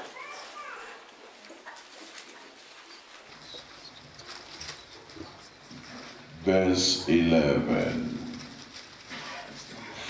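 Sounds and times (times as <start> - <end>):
pages rustling: 0.0 - 6.4, 7.7 - 10.0
soft paper crackles: 0.0 - 6.5, 7.7 - 10.0.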